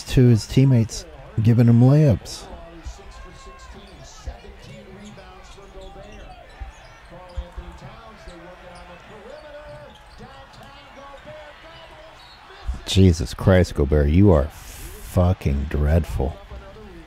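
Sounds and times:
commentator speaking: 0.0 - 6.3, 12.6 - 17.0.

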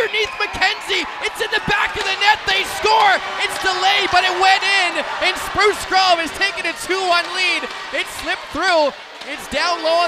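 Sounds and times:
excited voices shouting: 0.0 - 10.0.

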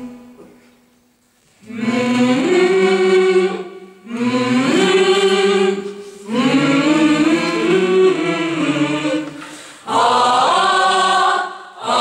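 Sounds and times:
mixed choir singing: 1.6 - 12.0.

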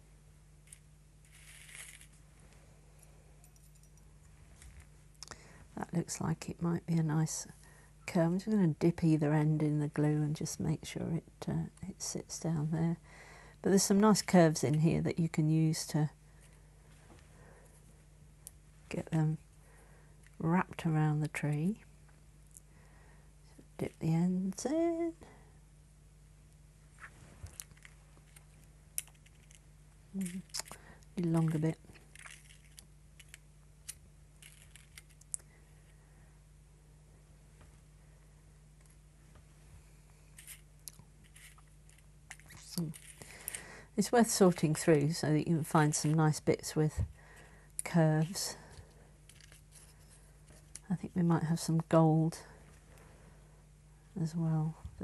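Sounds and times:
low steady hum: 0.0 - 55.0
soft brushing rustle: 0.7 - 2.9, 26.8 - 32.8, 38.9 - 50.8.

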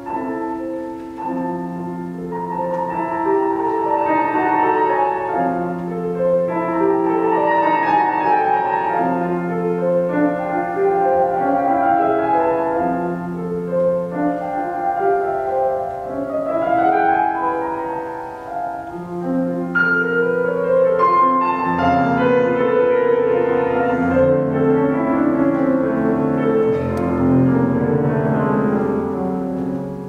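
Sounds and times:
slow classical piano piece: 0.0 - 30.0.

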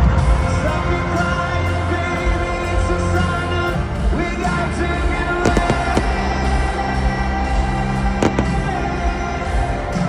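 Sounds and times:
live band music over sound system: 0.0 - 6.7, 8.2 - 9.0
sharp cracks: 5.5 - 6.7, 8.2 - 8.9.

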